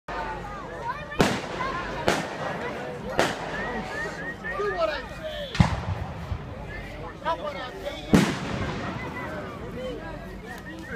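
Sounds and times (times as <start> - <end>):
firework bang with echo: 1.2 - 2.6, 3.2 - 3.6, 5.5 - 6.2, 8.1 - 9.2.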